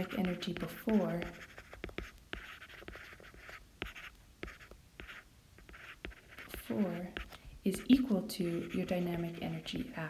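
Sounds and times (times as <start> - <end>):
stylus scratching on tablet screen: 0.0 - 10.0.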